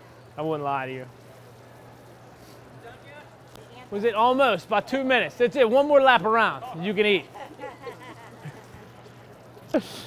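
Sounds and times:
distant voices chattering: 0.0 - 10.0.

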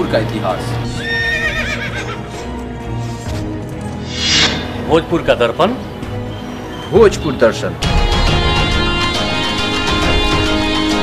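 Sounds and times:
background music: 0.0 - 11.0
horse whinnying: 1.0 - 2.3.

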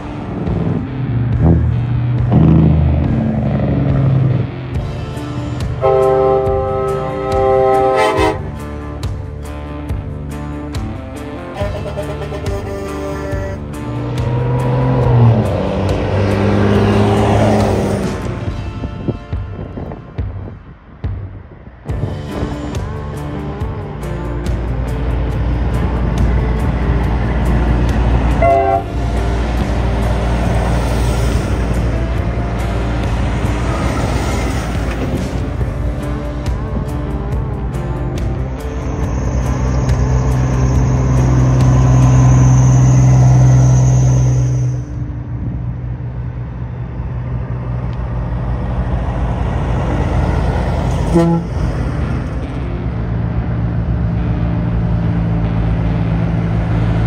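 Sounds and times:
trucks driving past: 0.0 - 57.0
loud steady tone: 28.2 - 29.3, 51.0 - 51.8.

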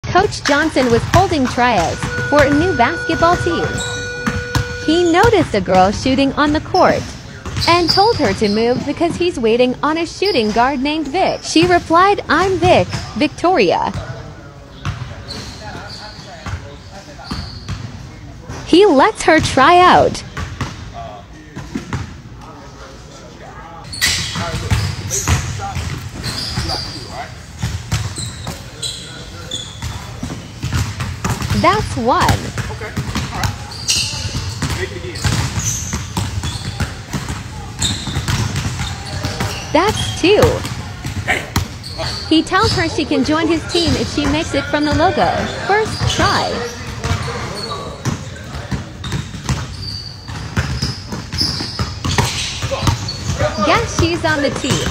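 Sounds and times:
voices talking in a hall: 0.0 - 54.9
basketballs bouncing on wooden floor: 0.4 - 6.8, 29.8 - 41.8, 42.5 - 47.4, 48.0 - 54.9
basketball bouncing on hardwood floor: 34.3 - 37.4.

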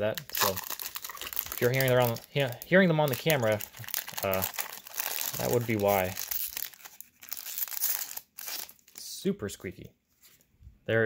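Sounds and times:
foil wrapper crinkling and squeaking: 0.0 - 9.1.

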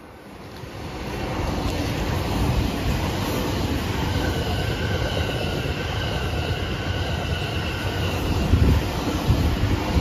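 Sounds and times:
train passing through station: 0.0 - 10.0.

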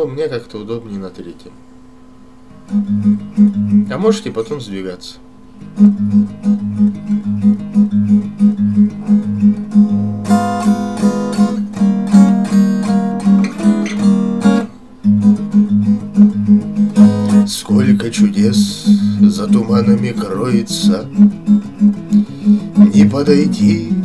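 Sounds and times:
acoustic guitar strumming: 2.5 - 4.7, 5.4 - 24.0.

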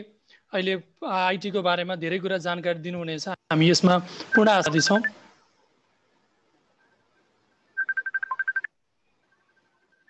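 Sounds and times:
rapid high electronic beeping: 4.3 - 5.2, 7.8 - 8.7.

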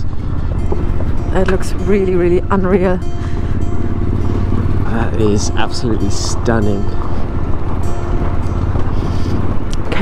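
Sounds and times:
motorcycle engine drone: 0.0 - 10.0.

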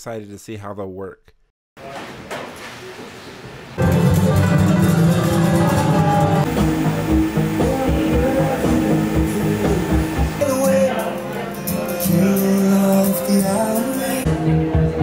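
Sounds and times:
room noise: 1.8 - 14.2
music with steady beat: 3.8 - 15.0.

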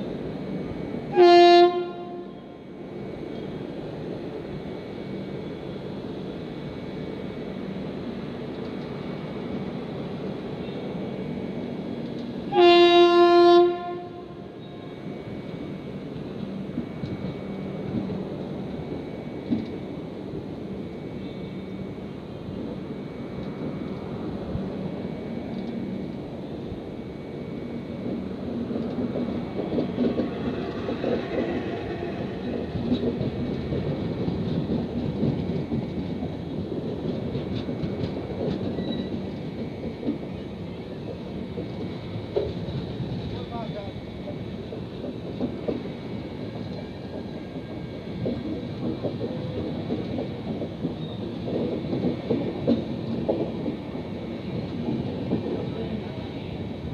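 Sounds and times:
train wheels rumbling on rails: 0.0 - 56.9
rail joint clicks and clunks: 1.8 - 56.9.

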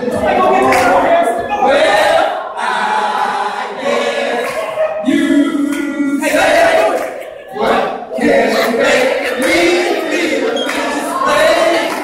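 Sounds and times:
men singing in unison: 1.6 - 12.0.

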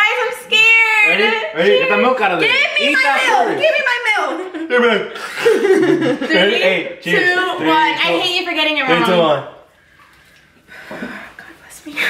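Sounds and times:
excited talk: 0.0 - 5.1, 5.9 - 9.5
people laughing: 3.0 - 6.8.

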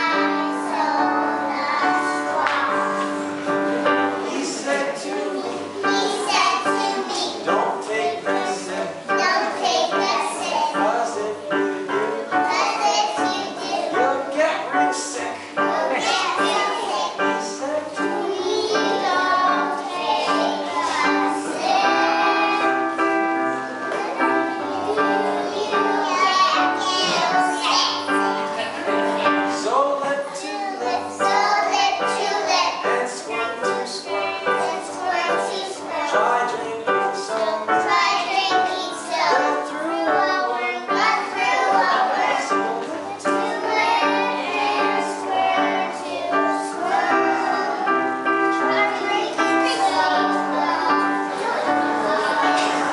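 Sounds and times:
accompanying music: 0.0 - 52.9
young children singing: 0.0 - 52.9.

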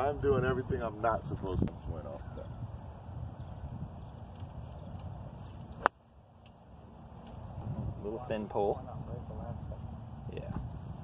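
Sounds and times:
golf club striking ball: 5.7 - 6.5.

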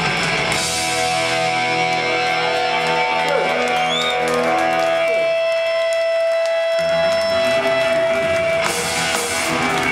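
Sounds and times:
punk band playing live: 0.0 - 9.9.

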